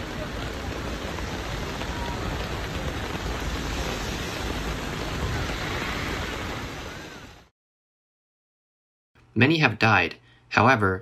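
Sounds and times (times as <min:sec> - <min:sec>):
heavy rain falling: 0:00.0 - 0:07.5.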